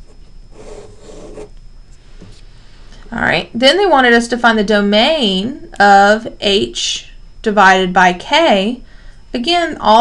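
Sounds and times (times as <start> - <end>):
pen scratching on paper: 0.5 - 1.5.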